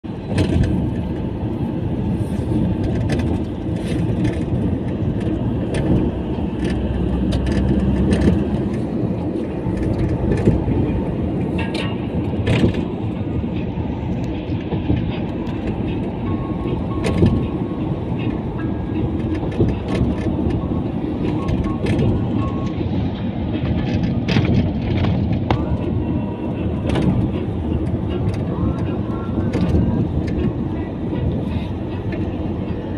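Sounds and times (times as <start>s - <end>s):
car road and wind rumble: 0.0s - 32.9s
sharp clicks and rattles: 0.3s - 1.3s, 2.8s - 10.8s, 11.6s - 13.0s, 19.1s - 25.8s.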